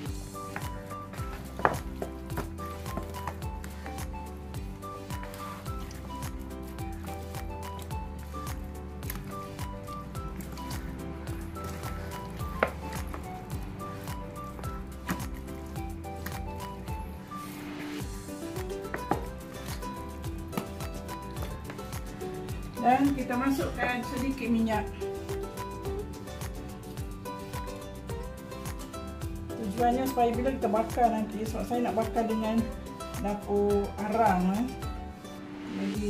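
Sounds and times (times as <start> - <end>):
background music with bass line: 0.0 - 36.0
hands squelching chicken in marinade: 4.9 - 16.8.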